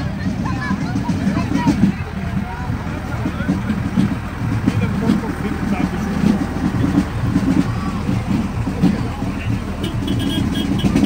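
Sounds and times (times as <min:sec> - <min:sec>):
crowd voices: 0:00.0 - 0:11.0
tractor engine rumbling: 0:00.0 - 0:11.0.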